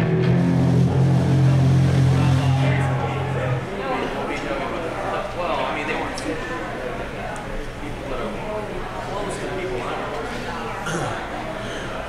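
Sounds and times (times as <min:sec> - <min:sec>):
amplified electric guitar and bass chord: 0:00.0 - 0:05.1.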